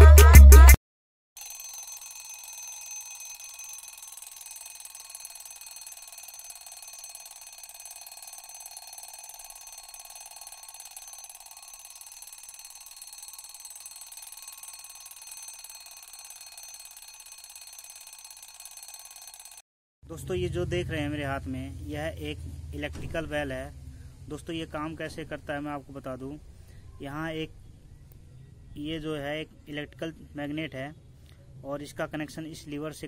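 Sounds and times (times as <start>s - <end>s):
electric bell buzzing: 1.4s - 19.6s.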